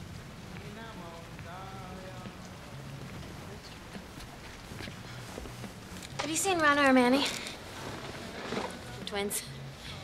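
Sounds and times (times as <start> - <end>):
hissing room ambience: 0.0 - 10.0.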